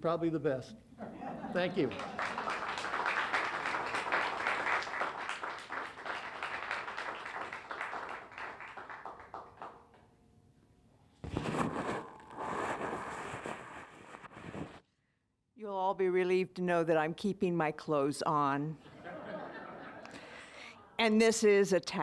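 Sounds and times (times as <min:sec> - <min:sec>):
audience applauding: 0:01.6 - 0:10.1
microphone being handled: 0:11.2 - 0:14.8.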